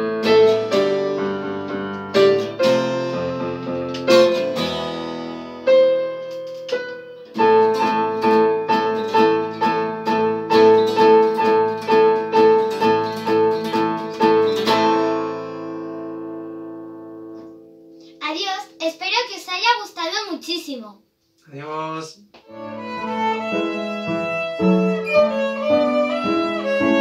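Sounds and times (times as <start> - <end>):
keyboard and acoustic guitar duet: 0.0 - 20.9.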